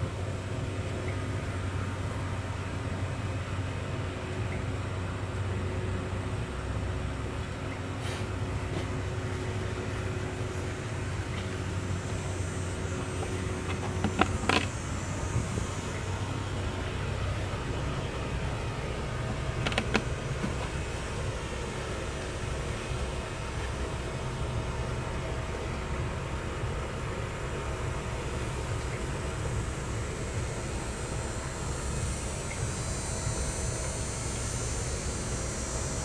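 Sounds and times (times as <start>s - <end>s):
low outdoor rumble: 0.0s - 36.0s.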